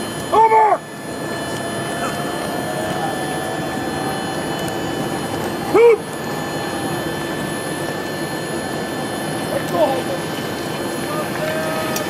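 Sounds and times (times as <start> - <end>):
rushing outdoor noise: 0.0 - 12.0.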